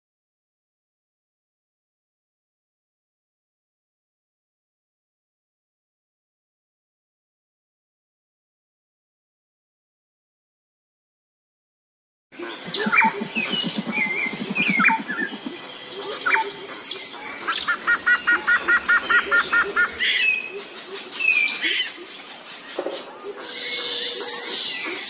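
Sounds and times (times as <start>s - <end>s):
bird whistling repeated notes: 12.4s - 20.6s
birds chirping and calling: 12.4s - 25.0s.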